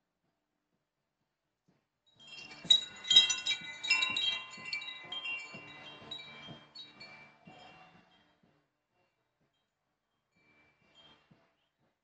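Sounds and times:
wind chimes ringing: 2.2s - 8.0s.

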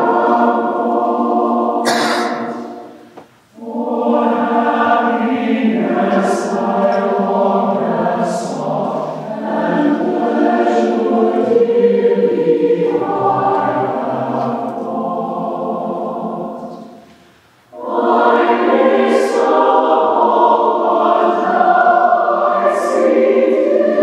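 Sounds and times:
mixed choir singing: 0.0s - 24.0s.

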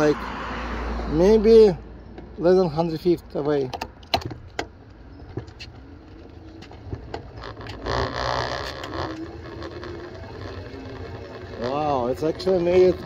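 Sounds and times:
wind and road rumble: 0.0s - 13.0s
light clicks and rattles: 3.3s - 13.0s.

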